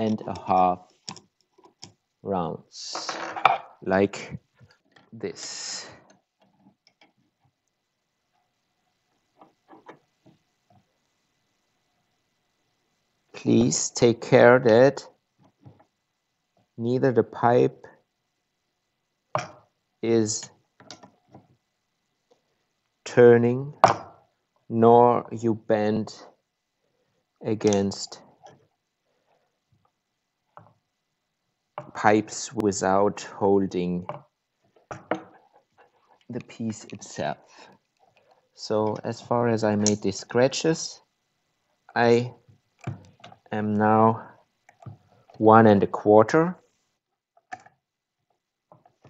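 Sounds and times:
faint metal clicks and taps: 6.0 - 7.8.

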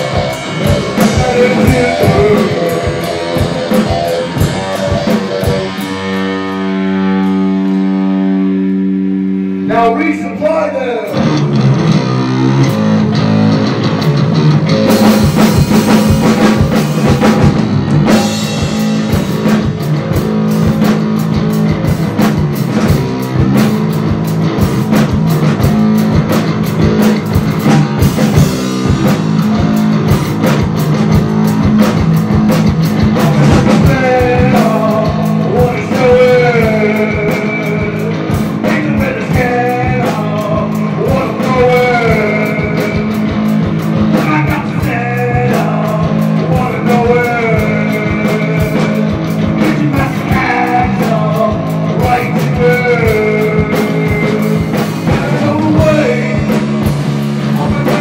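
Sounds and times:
drum kit beat: 0.0 - 58.0
electric guitar: 0.0 - 58.0.

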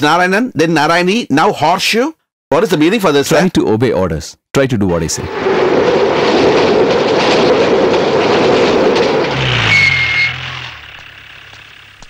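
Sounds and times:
car engine pulling away: 5.3 - 12.0
short high whine: 5.3 - 12.0.

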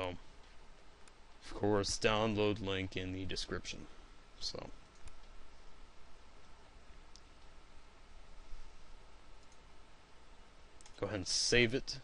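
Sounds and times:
low steady hiss: 0.0 - 12.0
computer mouse click: 4.8 - 5.4, 9.4 - 9.6, 10.8 - 11.0.

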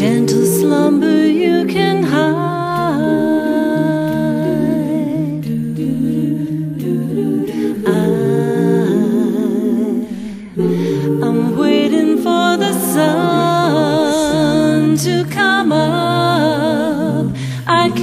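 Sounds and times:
humming harmony voices: 0.0 - 18.0
lead voice singing long notes: 0.0 - 18.0.

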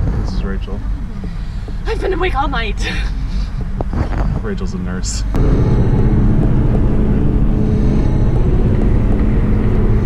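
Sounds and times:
car road noise drone: 0.0 - 10.0.

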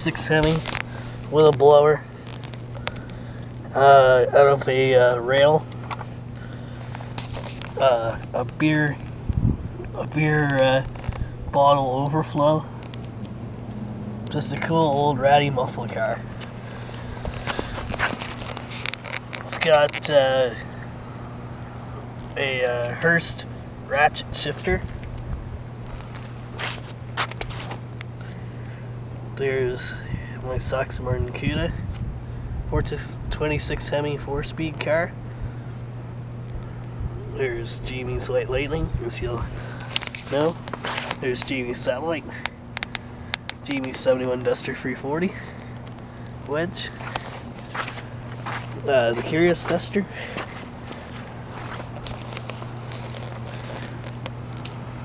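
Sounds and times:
steady low hum: 0.0 - 55.0
footsteps on wet gritty ground: 0.1 - 3.2, 15.8 - 20.2, 25.8 - 27.8, 39.4 - 41.6, 46.8 - 54.8
footsteps on wet slush: 47.0 - 54.1.

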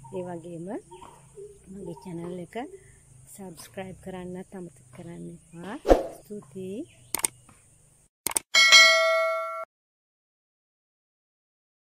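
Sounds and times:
mouse clicks: 7.1 - 7.4
bright bell ding: 8.6 - 9.7.

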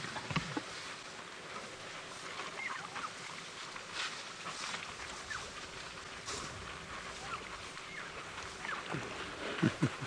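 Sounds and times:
steady outdoor hiss: 0.0 - 10.0
high chirping calls: 2.6 - 3.1, 7.2 - 8.9.

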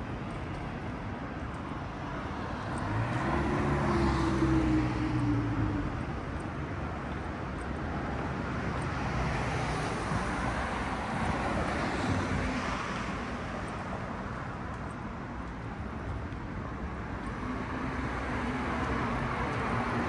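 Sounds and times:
city traffic noise: 0.0 - 20.0.

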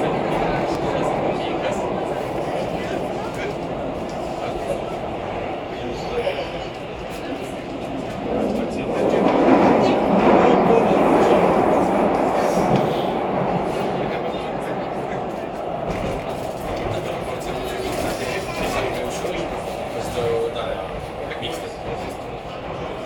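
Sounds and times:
metro train rumbling in tunnel: 0.0 - 23.0.

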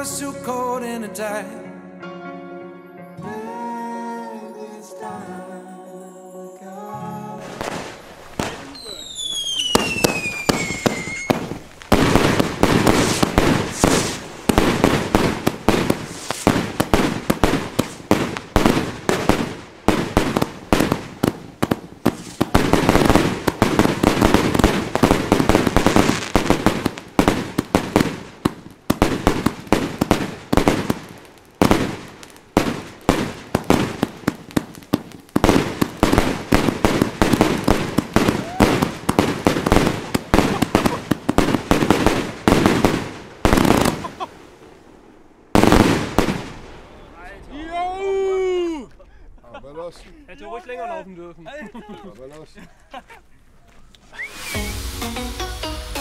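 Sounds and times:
fireworks crackling bursts: 0.0 - 0.6, 7.4 - 49.3, 53.9 - 56.0
fireworks launch thumps: 7.4 - 44.1
falling whistle: 8.7 - 11.4, 54.0 - 55.2.

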